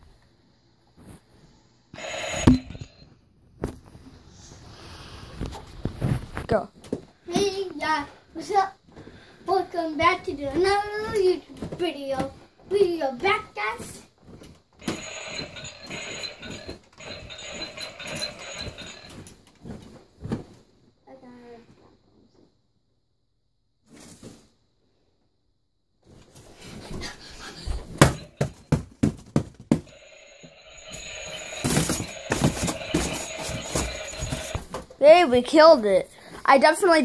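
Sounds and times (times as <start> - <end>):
toy gun buzzing burst: 2.0 - 2.8, 14.8 - 19.1, 29.9 - 34.6.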